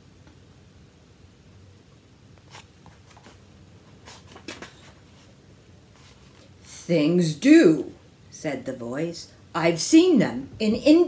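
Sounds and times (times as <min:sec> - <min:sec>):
low room hum: 0:00.0 - 0:11.0
paperback book rustling: 0:02.4 - 0:05.4.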